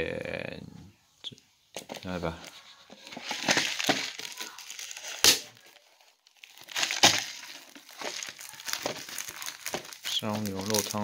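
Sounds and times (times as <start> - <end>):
plastic wrap crinkling: 1.8 - 11.0.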